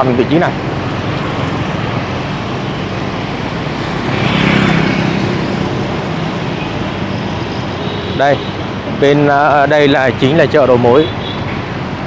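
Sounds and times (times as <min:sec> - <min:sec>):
vehicle passing: 0:00.0 - 0:10.9
traffic engine hum and road noise: 0:00.0 - 0:12.0.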